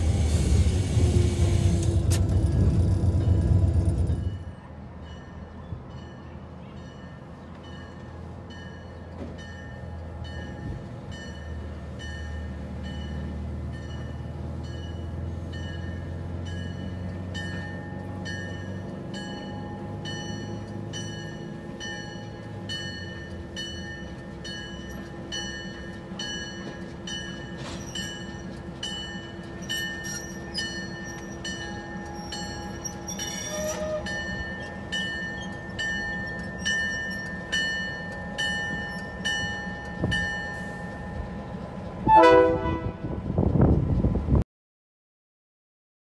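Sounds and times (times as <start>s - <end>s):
diesel locomotive engine drone: 0.0s - 44.4s
crossing bell ringing: 3.1s - 43.2s
locomotive horn: 33.2s - 34.3s, 42.0s - 43.5s.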